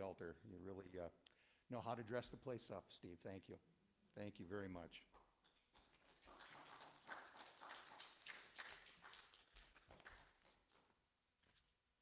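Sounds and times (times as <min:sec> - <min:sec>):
soft footsteps and shuffling: 0:10.7 - 0:11.8.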